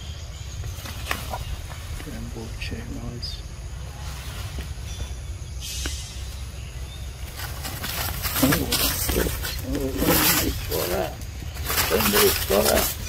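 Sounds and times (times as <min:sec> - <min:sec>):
macaques giving harsh calls: 0:08.4 - 0:13.0.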